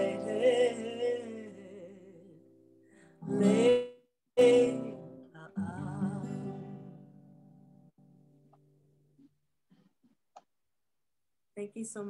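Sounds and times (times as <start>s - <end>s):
person singing: 0.0s - 2.6s, 3.2s - 7.0s
acoustic guitar: 0.0s - 10.0s.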